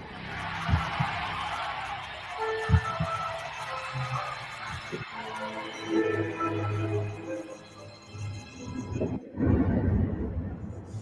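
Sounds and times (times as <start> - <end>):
dark sparse music: 0.0 - 11.0.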